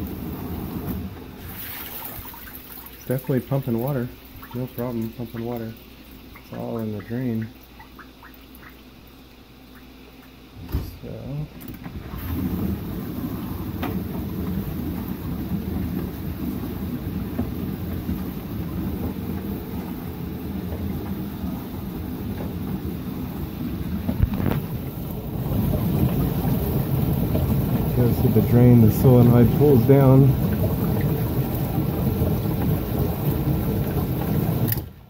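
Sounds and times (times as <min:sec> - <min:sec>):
dishwasher pump motor running: 0:00.0 - 0:07.6, 0:11.7 - 0:35.0
water spraying inside dishwasher: 0:00.0 - 0:11.4, 0:12.0 - 0:34.8.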